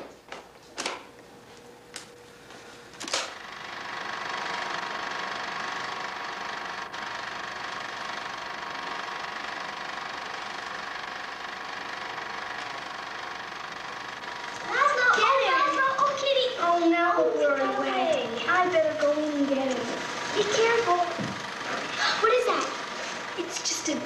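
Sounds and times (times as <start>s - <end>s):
film editing machine whirring: 0.0s - 24.0s.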